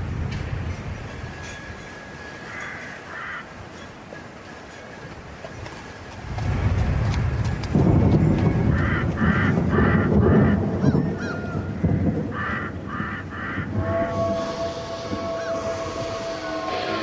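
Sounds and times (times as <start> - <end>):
nasal honking high stabs: 13.7 - 17.0.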